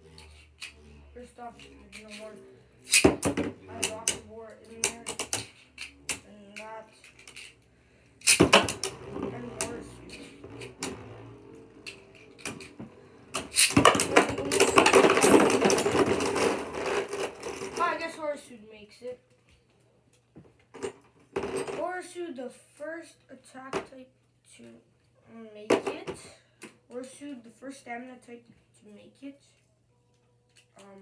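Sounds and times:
spinning tops whirring and clashing: 0:01.9 - 0:03.9, 0:08.2 - 0:17.8.

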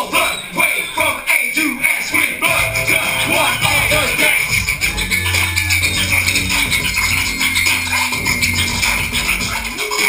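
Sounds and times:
hip hop beat on turntables: 0:01.0 - 0:10.0
bass line: 0:02.4 - 0:08.7.

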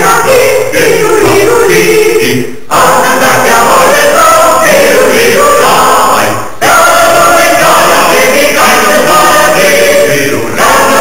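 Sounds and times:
group of people singing: 0:00.0 - 0:11.0.

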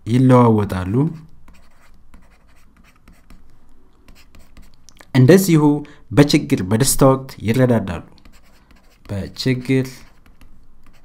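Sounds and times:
stylus scratching on tablet: 0:01.1 - 0:03.5, 0:04.1 - 0:04.8, 0:08.2 - 0:11.0.

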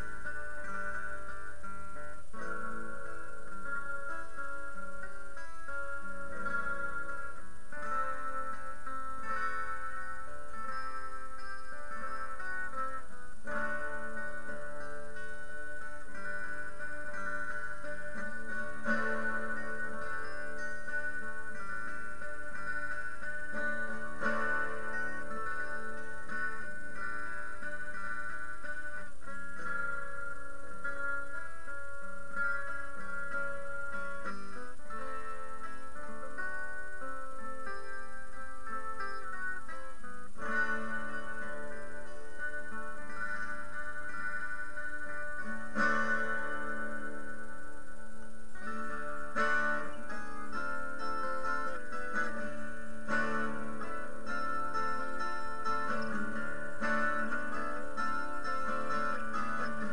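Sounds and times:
acoustic guitar picking: 0:00.0 - 0:59.9.

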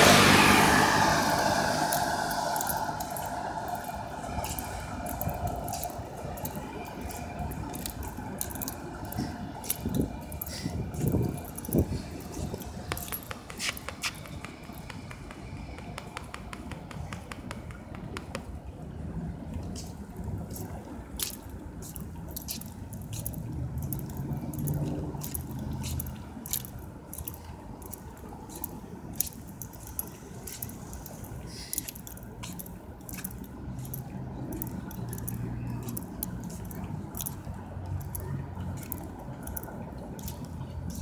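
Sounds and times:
footsteps on pavement: 0:00.7 - 0:18.5, 0:19.5 - 0:41.0
phone handling clicks and scuffs: 0:07.8 - 0:15.4.

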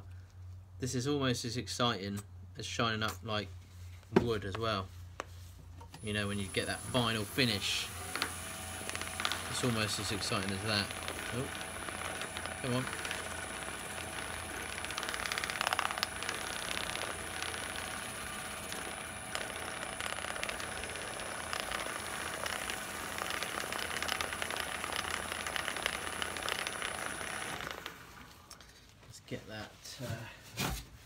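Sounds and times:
wood lathe motor whine: 0:06.0 - 0:28.6.

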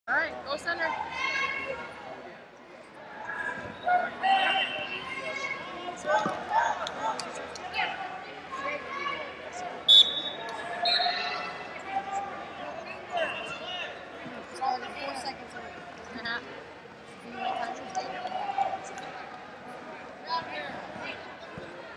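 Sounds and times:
short high whistle: 0:09.9 - 0:11.2.

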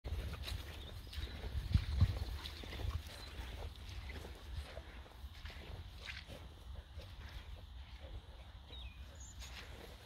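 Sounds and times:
dogs snuffling through grass: 0:00.1 - 0:10.0.

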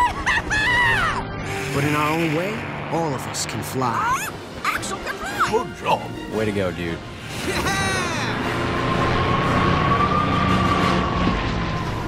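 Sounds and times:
propeller plane engine droning: 0:00.0 - 0:12.0
high whine: 0:00.2 - 0:05.2.

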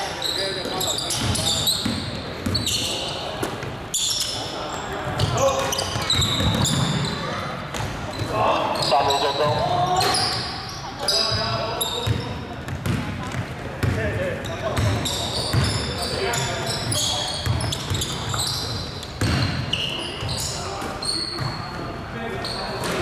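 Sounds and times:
sneakers squeaking: 0:00.0 - 0:23.0
basketball bouncing on hardwood: 0:12.0 - 0:14.0.

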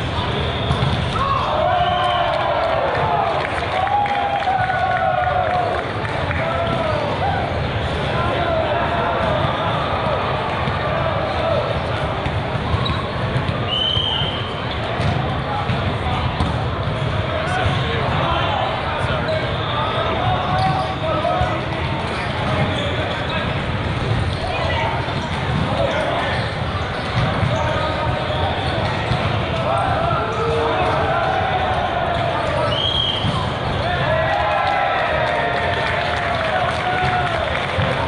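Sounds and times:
volleyballs struck and bouncing: 0:00.0 - 0:02.0, 0:04.5 - 0:18.4, 0:20.2 - 0:38.0
hubbub of many voices: 0:00.0 - 0:38.0
referee's whistle: 0:13.7 - 0:14.7, 0:32.6 - 0:33.4.

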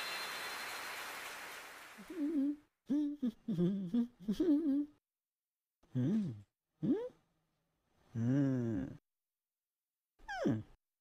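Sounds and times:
person humming: 0:02.1 - 0:05.0, 0:05.8 - 0:07.2, 0:08.1 - 0:09.0, 0:10.3 - 0:10.8.

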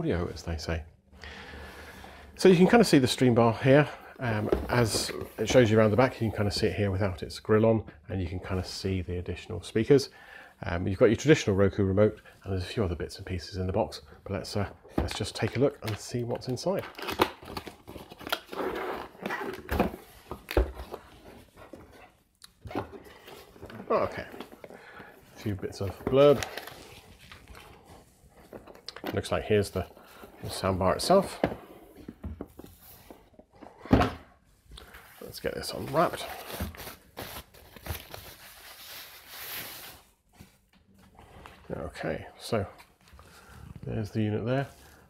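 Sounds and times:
wrapping rustling: 0:35.0 - 0:40.7.

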